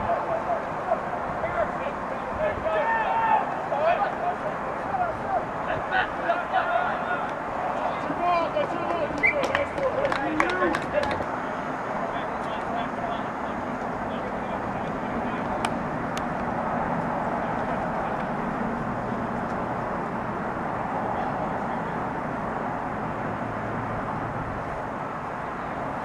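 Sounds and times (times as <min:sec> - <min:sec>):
faint distant voices: 0:00.0 - 0:26.0.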